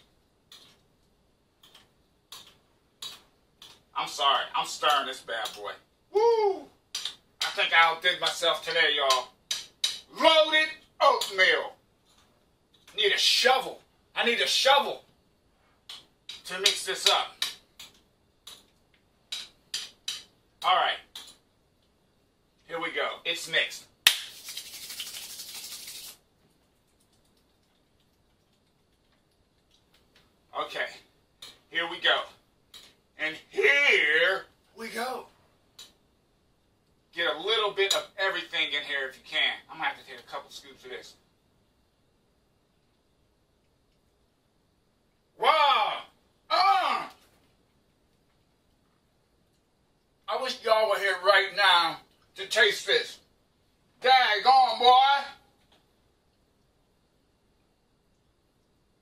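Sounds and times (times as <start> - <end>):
sharp hand clap: 24.0 - 26.0
palms rubbing together: 24.1 - 26.2.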